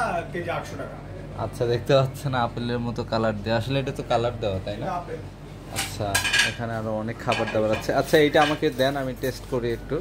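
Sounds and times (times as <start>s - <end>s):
dishes and cutlery clinking: 5.7s - 9.4s.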